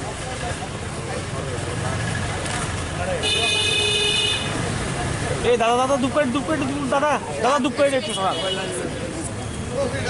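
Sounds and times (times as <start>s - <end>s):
outdoor crowd voices: 0.0s - 10.0s
road traffic noise: 0.0s - 10.0s
vehicle horn: 3.2s - 4.5s.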